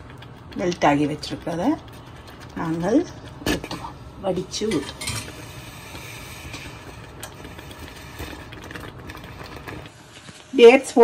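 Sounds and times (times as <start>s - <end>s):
food simmering with faint pops: 0.0s - 11.0s
low kitchen hum: 0.0s - 11.0s.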